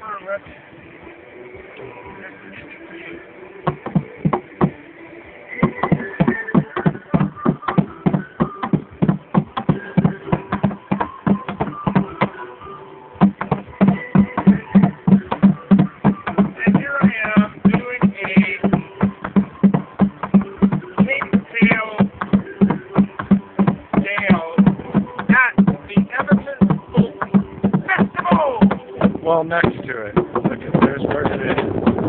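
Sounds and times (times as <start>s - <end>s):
drumming: 3.7s - 4.8s, 5.6s - 12.4s, 13.2s - 32.0s.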